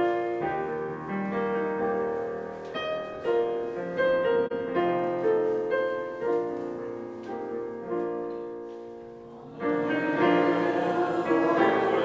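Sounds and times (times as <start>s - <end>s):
digital piano playing a hymn: 0.0s - 12.0s.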